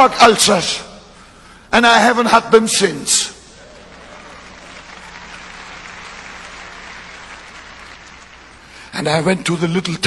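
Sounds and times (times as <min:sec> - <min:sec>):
faint electrical hum: 0:00.0 - 0:10.0
distant audience applauding: 0:03.6 - 0:08.8.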